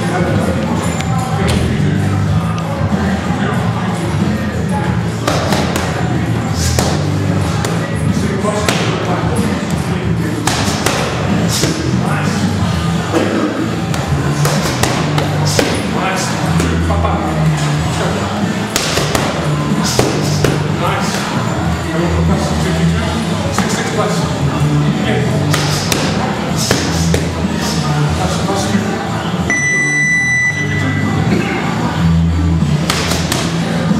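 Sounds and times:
background music: 0.0s - 33.9s
boxing gloves hitting focus mitts: 5.2s - 6.0s, 10.4s - 11.8s, 18.7s - 19.4s, 25.5s - 27.3s, 32.8s - 33.6s.

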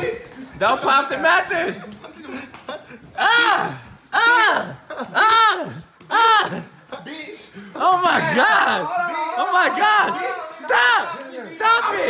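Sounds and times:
person crying out: 3.1s - 6.8s.

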